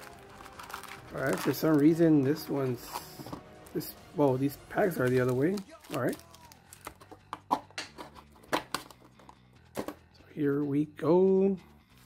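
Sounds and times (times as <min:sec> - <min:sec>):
foil packs crinkling: 0:00.0 - 0:03.8, 0:04.7 - 0:07.1.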